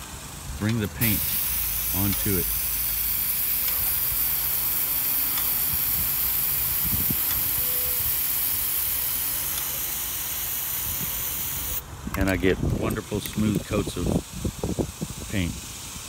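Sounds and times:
spray paint can hissing: 0.0 - 11.8, 13.1 - 16.0.

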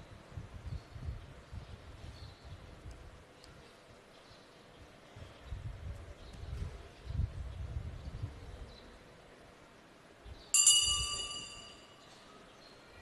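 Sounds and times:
small metal bell ringing: 10.6 - 12.0.

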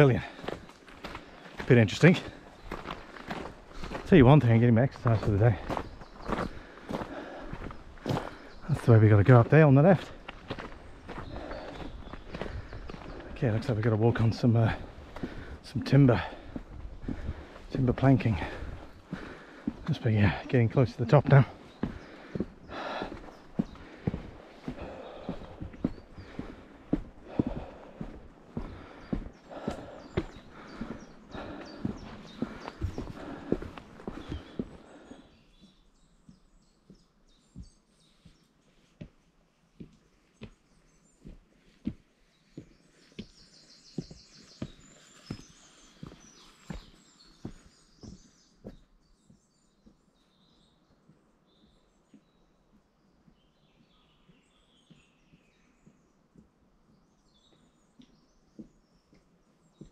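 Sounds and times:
small birds chirping: 0.0 - 59.9
footsteps on wooden boards: 0.2 - 50.1.

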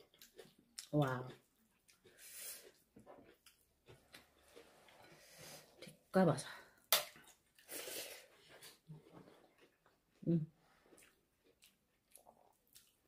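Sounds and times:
chewing and lip smacks: 10.9 - 13.0.

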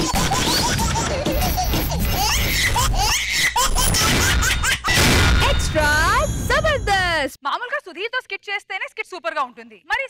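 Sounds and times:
title jingle: 5.4 - 7.4.

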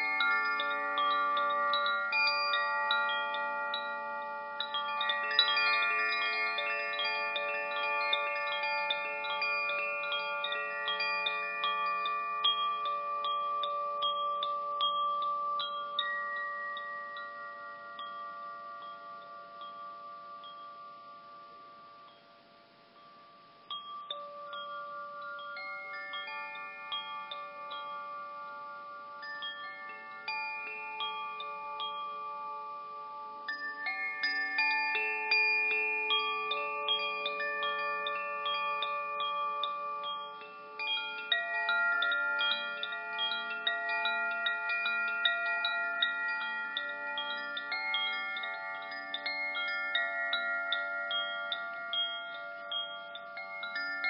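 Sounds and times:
chimes ringing: 0.0 - 54.0.

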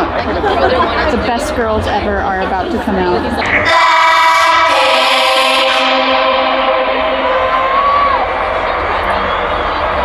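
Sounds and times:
long high note: 3.4 - 9.6
held chord over loudspeakers: 3.4 - 10.0.

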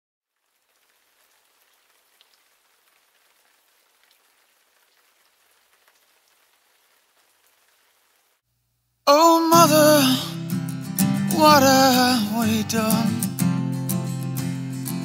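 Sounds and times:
tiny crackles: 0.3 - 8.5
faint hiss: 0.3 - 10.5.

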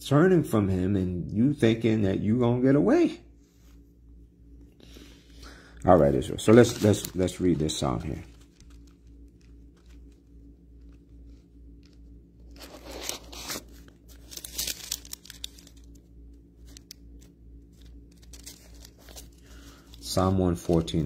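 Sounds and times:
low hum: 0.0 - 21.0
pages rustling and flicking: 6.1 - 21.0.

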